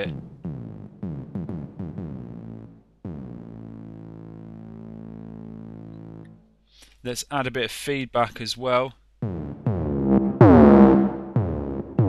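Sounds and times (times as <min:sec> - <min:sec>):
synthesized drum hit: 0:00.0 - 0:03.6, 0:09.2 - 0:12.0
synth note dropping in pitch: 0:09.2 - 0:12.0.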